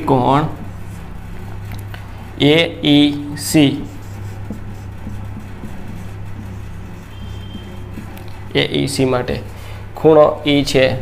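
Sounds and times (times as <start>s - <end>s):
low hum: 0.0s - 10.0s
marker scratching on whiteboard: 0.1s - 9.6s.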